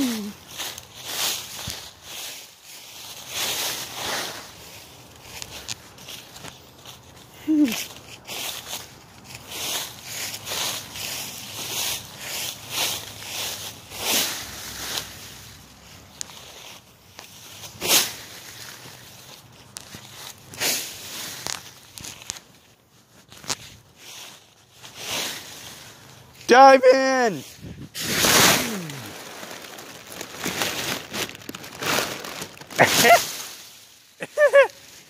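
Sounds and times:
dry leaves crunching: 0.0 - 35.0.

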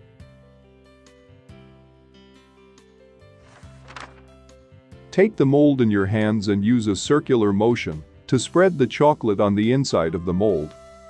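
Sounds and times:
quiet background music: 0.0 - 11.0
papery swish effect: 3.4 - 4.3.

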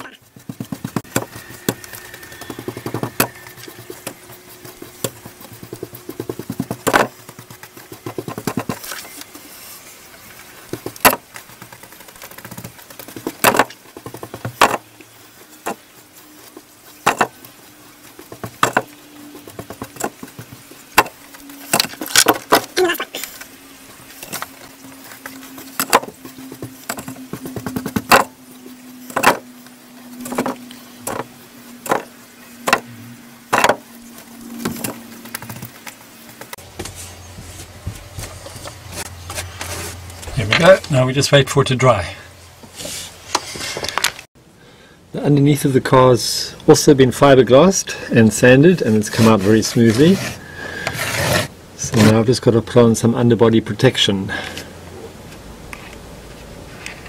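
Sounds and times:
paintbrush dabbing on metal: 0.1 - 14.2.

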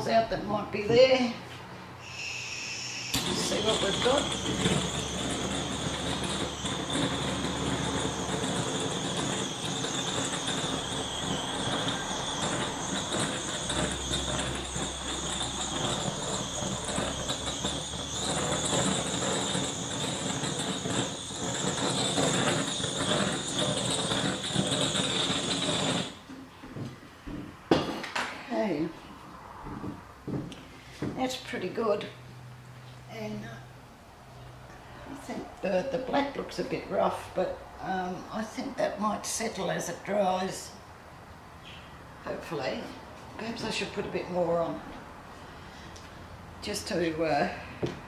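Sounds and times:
blowtorch hissing: 2.0 - 26.3.

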